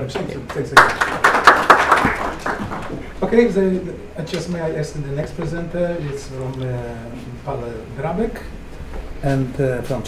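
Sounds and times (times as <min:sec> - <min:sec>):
audience applauding: 0:00.7 - 0:03.2.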